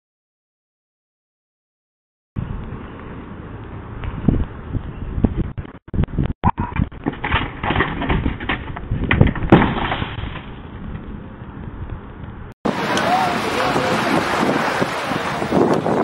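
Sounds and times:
knocks scrapes and thumps of fall: 6.4 - 10.6.

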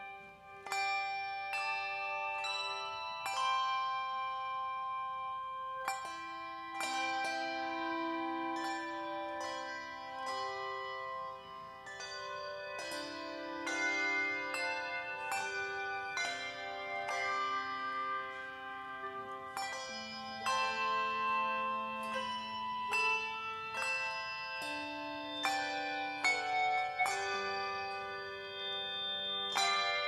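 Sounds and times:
handbell choir ringing: 0.0 - 30.0.

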